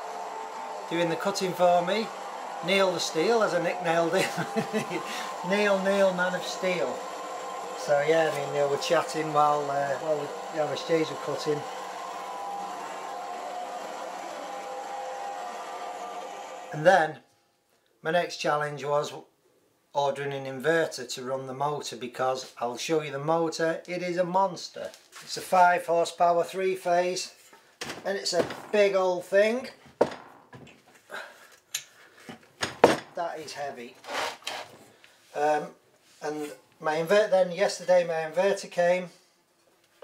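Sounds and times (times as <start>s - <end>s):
bandsaw cutting steel: 34.0s - 34.7s.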